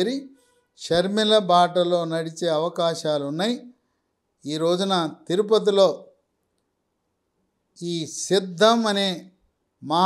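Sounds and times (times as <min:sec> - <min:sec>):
man speaking: 0:00.0 - 0:03.7, 0:04.4 - 0:06.1, 0:07.8 - 0:10.0.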